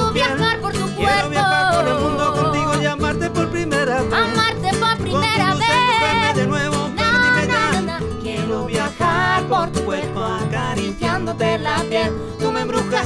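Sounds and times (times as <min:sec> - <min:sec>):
woman singing: 0:00.0 - 0:03.2, 0:03.9 - 0:13.0
man singing along: 0:00.0 - 0:13.0
strummed acoustic guitar: 0:00.0 - 0:13.0.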